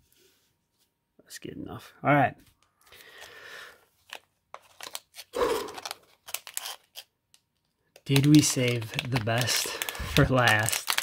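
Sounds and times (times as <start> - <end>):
foil wrapper crinkling: 4.0 - 11.0.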